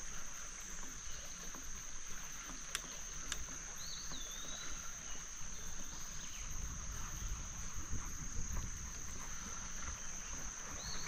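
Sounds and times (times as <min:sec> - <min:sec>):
bicycle rolling on dirt: 0:00.0 - 0:11.0.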